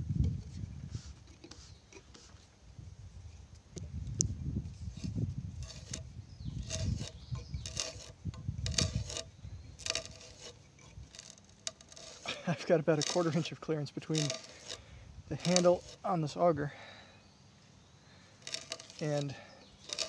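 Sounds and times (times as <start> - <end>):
hand auger grinding into wood: 4.7 - 16.4, 18.2 - 20.0
auger handle squeak: 5.6 - 16.0, 18.4 - 20.0.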